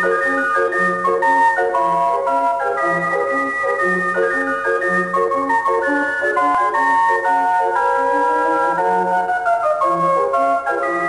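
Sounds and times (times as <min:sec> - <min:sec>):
circus organ music: 0:00.0 - 0:11.0.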